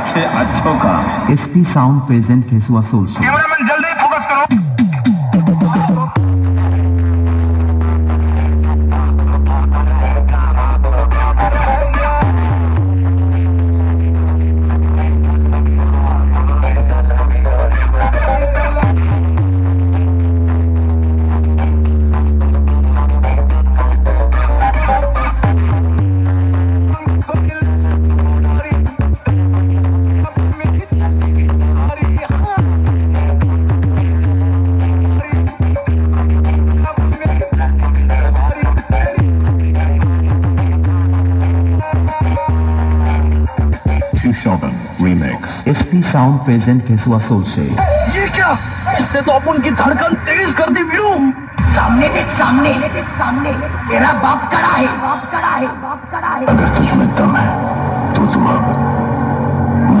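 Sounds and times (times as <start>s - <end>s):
heavy bass line: 0.0s - 60.0s
loud electronic dance music: 0.0s - 60.0s.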